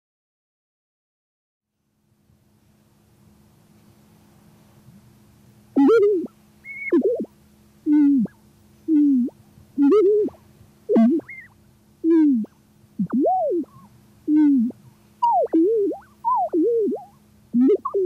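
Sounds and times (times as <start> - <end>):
low steady hum: 1.7 - 18.0
gliding electronic tones: 5.8 - 7.3, 7.9 - 8.3, 8.9 - 18.0.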